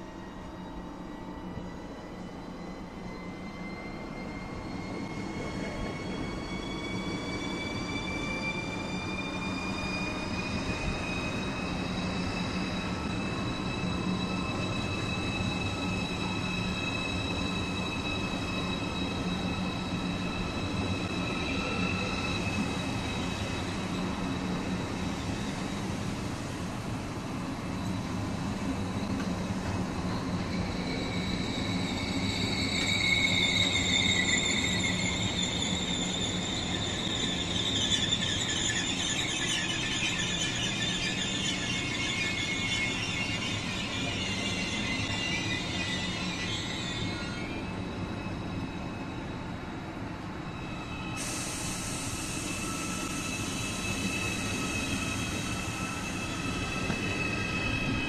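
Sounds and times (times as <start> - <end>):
train low hum: 0.0 - 58.0
train wheel squeal: 0.0 - 58.0.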